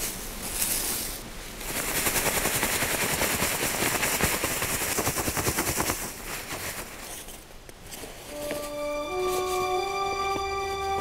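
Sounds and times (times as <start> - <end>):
leaves rattling in a sieve: 0.0 - 8.3.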